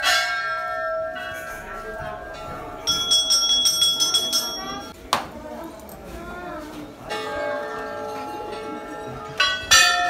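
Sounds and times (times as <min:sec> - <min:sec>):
temple bell ringing: 0:00.0 - 0:05.0, 0:07.0 - 0:10.0
small high bell ringing rapidly: 0:02.8 - 0:04.9.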